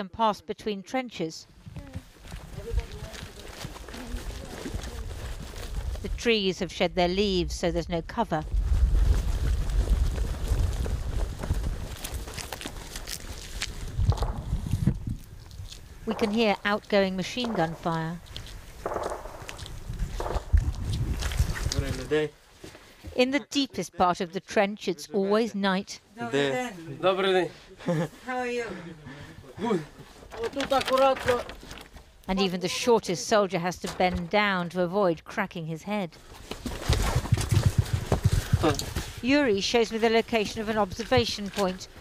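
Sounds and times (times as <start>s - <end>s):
footsteps through dry undergrowth: 1.8s - 6.2s, 8.5s - 23.1s
man speaking: 26.2s - 31.5s.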